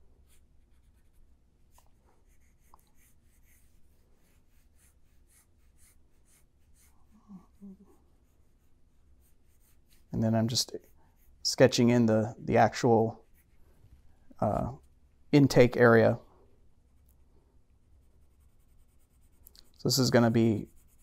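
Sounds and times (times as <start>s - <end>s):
pencil scratching on paper: 0.3s - 1.3s, 2.2s - 7.1s, 7.8s - 11.8s, 13.0s - 13.8s, 17.9s - 21.0s.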